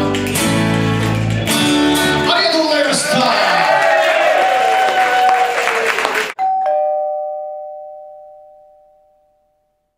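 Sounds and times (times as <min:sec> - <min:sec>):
live band with acoustic guitars: 0:00.0 - 0:03.7
two-note chime: 0:06.4 - 0:09.9.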